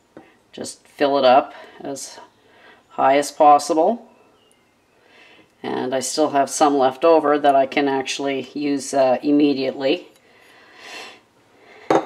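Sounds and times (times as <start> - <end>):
soft breath: 5.0 - 5.5, 10.2 - 12.0.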